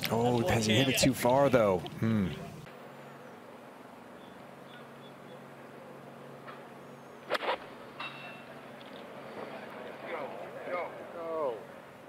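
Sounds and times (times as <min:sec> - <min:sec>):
faint bird chirps: 0:04.1 - 0:05.9.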